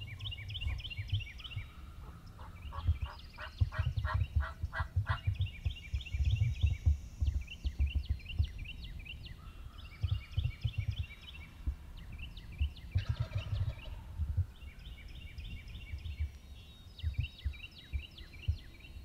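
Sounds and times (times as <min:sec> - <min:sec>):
songbirds chirping: 0:00.0 - 0:19.0
wind rumble on microphone: 0:00.0 - 0:19.0.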